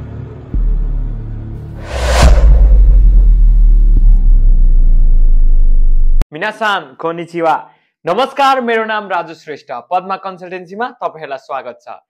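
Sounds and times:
rising whoosh: 1.8 - 6.0
deep bass boom: 1.8 - 6.2
sustained low rumble: 1.8 - 6.2.

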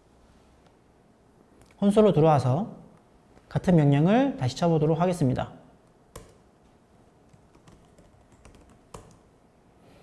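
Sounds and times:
computer keyboard typing: 6.1 - 6.4, 7.3 - 9.3.

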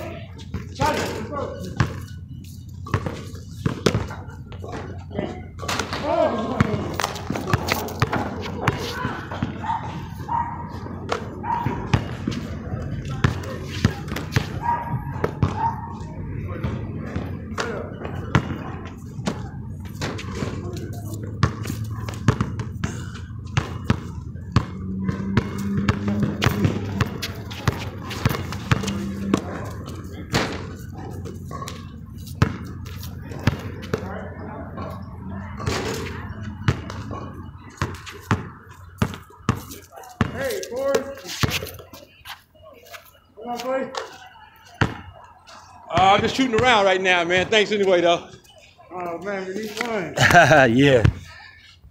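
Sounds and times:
basketball bouncing on asphalt: 1.7 - 5.0, 5.8 - 41.9, 44.8 - 45.1
basketball hitting backboard and rim: 5.6 - 10.0, 10.8 - 12.4, 13.2 - 15.6, 16.6 - 31.8, 32.4 - 34.2, 34.8 - 39.6.

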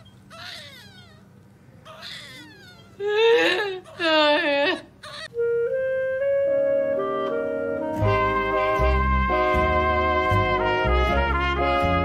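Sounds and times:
newborn baby crying: 0.0 - 5.4.

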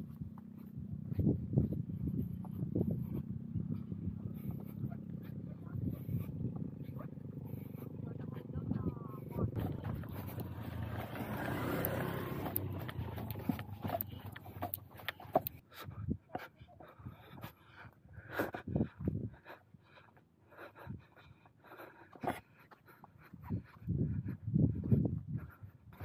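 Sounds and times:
wind rumbling on microphone: 0.0 - 16.3, 18.5 - 19.5, 23.2 - 26.0
camera movement noise: 9.5 - 15.6.

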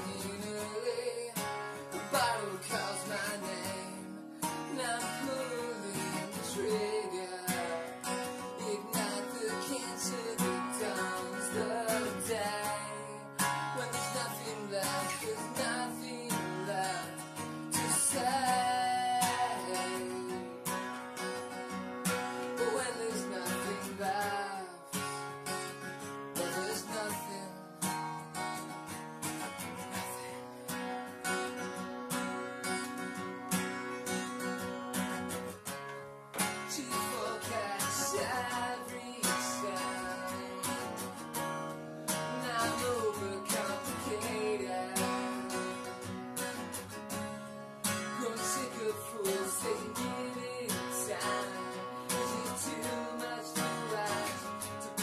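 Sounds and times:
acoustic guitar strummed: 0.0 - 55.0.

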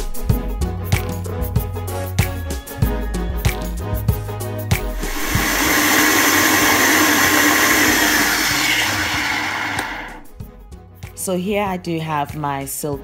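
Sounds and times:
blender running at high speed: 4.9 - 10.3.

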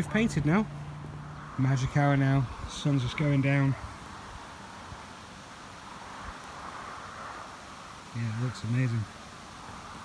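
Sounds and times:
outdoor background hiss: 0.0 - 10.0
wind on microphone: 1.1 - 10.0.

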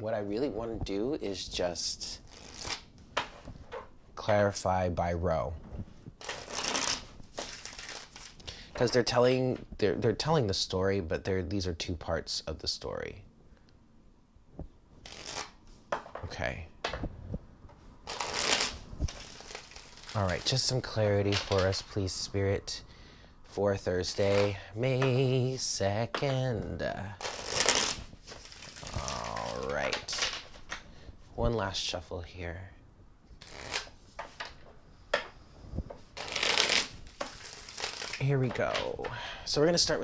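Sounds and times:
cards riffling: 2.3 - 2.9, 6.2 - 8.5, 15.0 - 15.6, 18.0 - 22.0, 24.0 - 25.4, 27.2 - 30.9, 33.4 - 34.6, 35.9 - 39.0.

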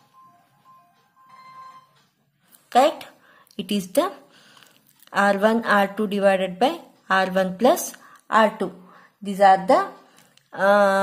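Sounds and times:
faint tune of high notes: 0.0 - 2.3.

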